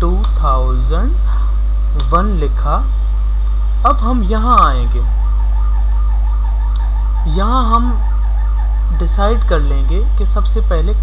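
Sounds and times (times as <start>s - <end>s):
low electrical mains hum: 0.0s - 11.0s
faint warbling tone: 2.0s - 11.0s.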